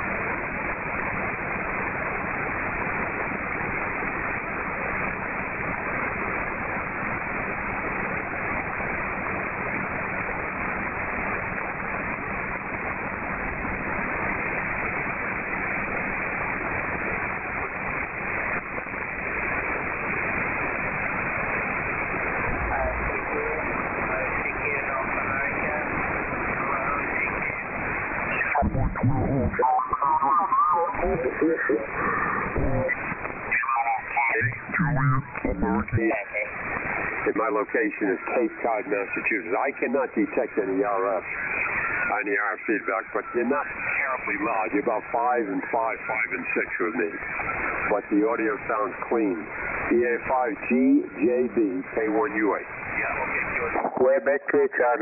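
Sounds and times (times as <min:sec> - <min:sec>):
radio band noise hiss: 0:00.0 - 0:55.0.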